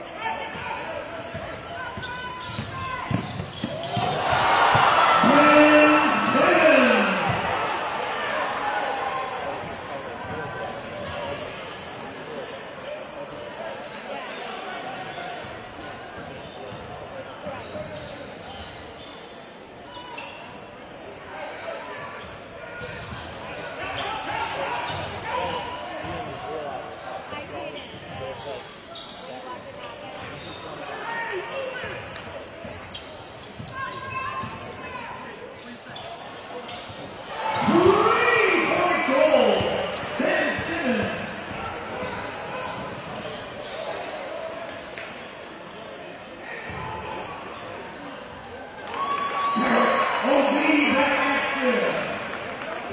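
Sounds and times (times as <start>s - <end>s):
crowd voices echoing: 0.0s - 11.4s, 37.2s - 52.9s
basketball bouncing on court: 1.3s - 4.9s.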